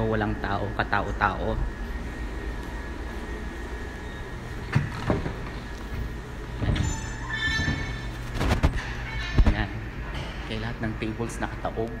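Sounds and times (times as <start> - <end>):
machinery humming: 0.0 - 12.0.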